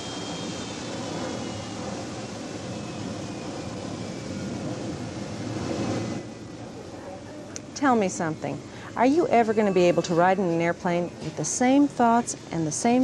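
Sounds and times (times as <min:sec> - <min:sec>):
jet engines running: 0:00.0 - 0:09.3.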